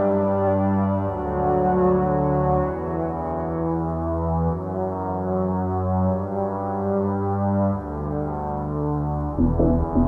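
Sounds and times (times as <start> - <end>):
electronic drone music: 9.4 - 10.0.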